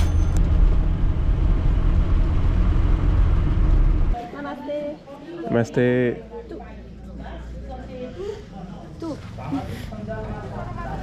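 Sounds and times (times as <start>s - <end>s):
car engine and road noise: 0.0s - 4.2s.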